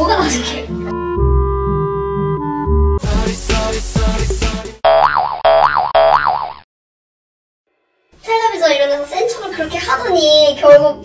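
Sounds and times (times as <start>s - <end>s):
music: 0.0s - 4.8s
cartoon boing sound effect: 4.8s - 6.6s.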